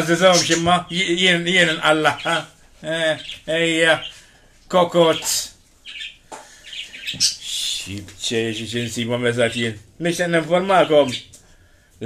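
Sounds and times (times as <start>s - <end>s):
parrot chirping: 0.0s - 4.3s, 5.0s - 11.3s.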